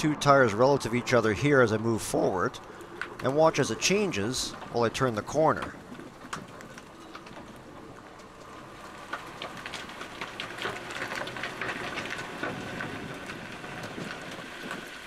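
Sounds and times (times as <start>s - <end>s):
tires rolling over gravel: 0.0s - 15.0s.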